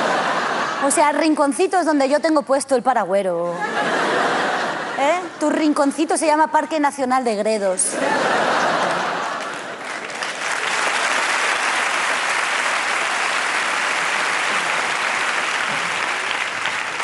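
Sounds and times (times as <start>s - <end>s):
audience applauding: 8.6s - 17.0s.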